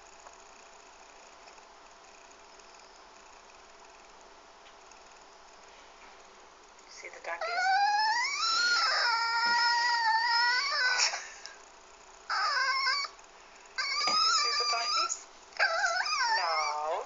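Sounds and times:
dog whining and crying: 7.4s - 11.5s, 12.3s - 13.2s, 13.8s - 17.0s.

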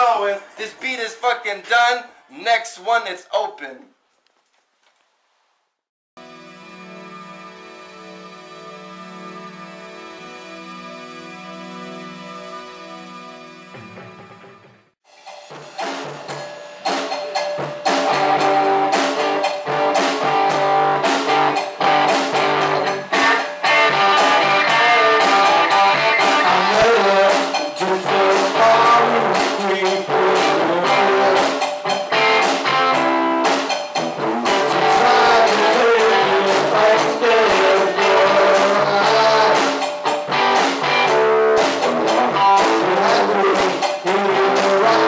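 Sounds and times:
live rock band playing: 15.4s - 45.0s.

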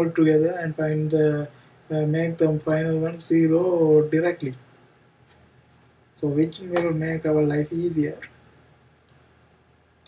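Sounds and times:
person speaking: 0.0s - 4.6s, 6.2s - 8.4s.

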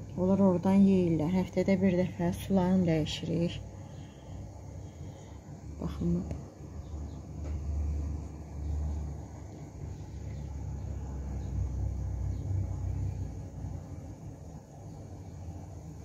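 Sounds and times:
aquarium water rumble: 0.0s - 16.0s.

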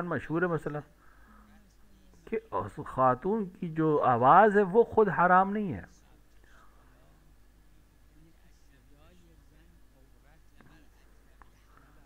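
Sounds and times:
faint low speech: 5.9s - 12.0s.

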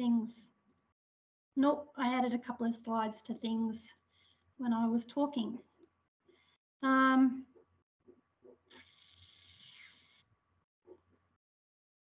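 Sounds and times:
faint hiss: 8.7s - 10.2s.

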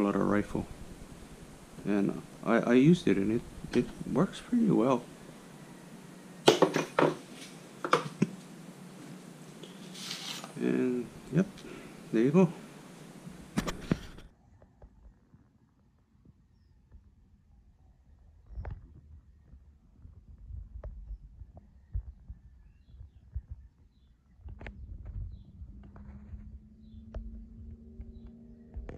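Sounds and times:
low steady hum: 0.0s - 15.3s, 16.1s - 28.9s
low thumps and knocks: 24.4s - 28.9s.

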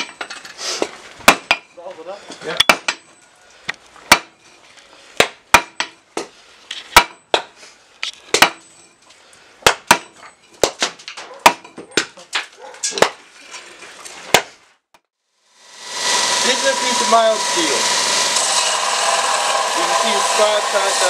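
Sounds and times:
hammer striking hot iron: 0.0s - 0.3s, 1.2s - 1.8s, 2.6s - 3.2s, 4.1s - 4.4s, 5.2s - 6.3s, 6.9s - 7.5s, 8.3s - 8.9s, 9.6s - 10.8s.

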